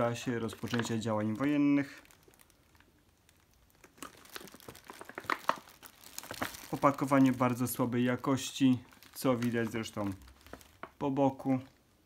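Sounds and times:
plastic bag crinkling: 0:00.0 - 0:11.9.

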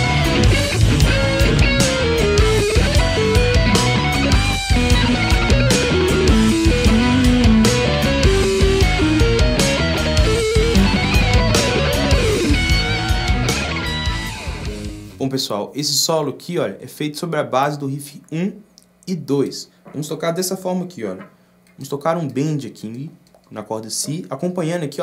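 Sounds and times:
electric guitar solo with bends: 0:00.0 - 0:14.8.

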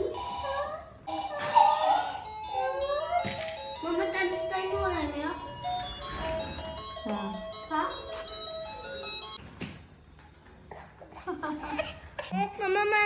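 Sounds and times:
child's voice: 0:03.8 - 0:05.5, 0:12.4 - 0:13.0.

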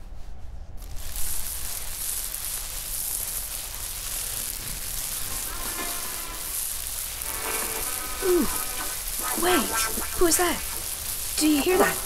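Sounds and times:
rain on a vehicle roof: 0:01.2 - 0:12.0.

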